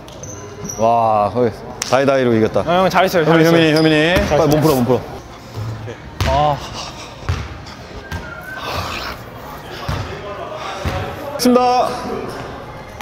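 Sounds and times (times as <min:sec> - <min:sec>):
basketball bouncing on gym floor: 0:07.3 - 0:08.3, 0:09.8 - 0:10.2.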